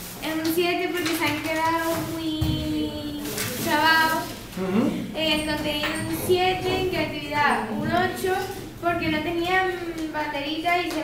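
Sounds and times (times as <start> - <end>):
girl's voice: 0.2 - 4.4, 5.2 - 11.0.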